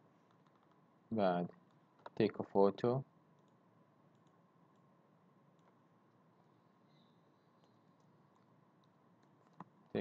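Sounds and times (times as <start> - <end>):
faint steady hum: 0.0 - 10.0
computer mouse clicks: 0.2 - 0.8, 3.3 - 4.9, 7.6 - 9.8.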